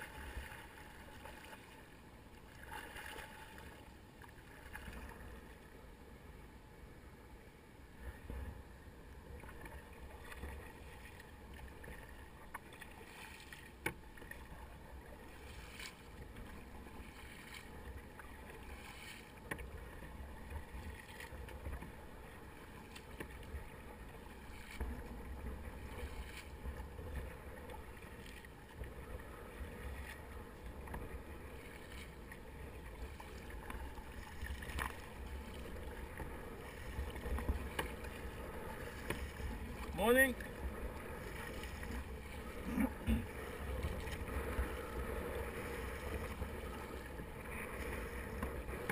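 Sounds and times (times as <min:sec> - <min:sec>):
kayak paddle splashing in water: 0:00.0 - 0:05.4, 0:09.3 - 0:48.9
constant low rumble: 0:00.0 - 0:48.9.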